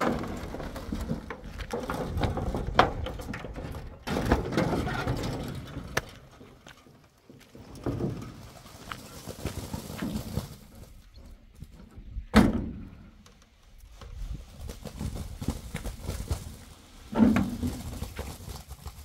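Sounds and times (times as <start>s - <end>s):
wheelbarrow wheel grinding on gravel: 0.0s - 11.2s, 13.8s - 19.0s
wheelbarrow tray rattling: 0.0s - 13.1s, 14.9s - 19.0s.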